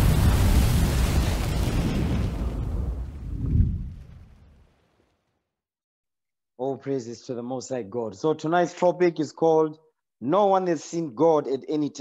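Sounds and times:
deep rumbling boom: 0.0 - 4.7.

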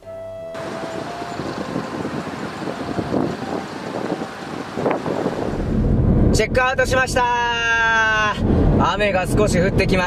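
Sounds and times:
background music note: 0.0 - 5.6
road traffic: 0.0 - 6.4
wind on microphone: 0.6 - 6.5.

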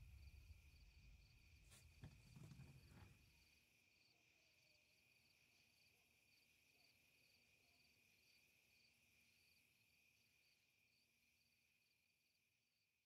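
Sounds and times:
faint cricket chirping: 0.0 - 13.0.

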